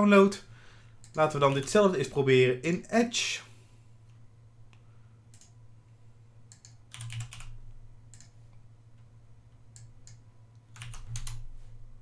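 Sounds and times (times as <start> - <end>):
low steady hum: 0.0 - 12.0
computer keyboard keystrokes: 6.5 - 8.4, 9.7 - 11.5.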